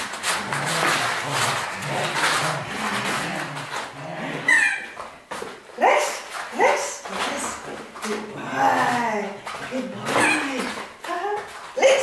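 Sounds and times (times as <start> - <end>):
dog whining: 4.4 - 5.0.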